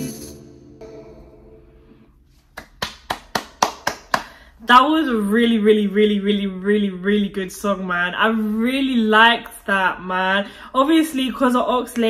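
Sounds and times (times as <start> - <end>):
person clapping: 2.4 - 4.4.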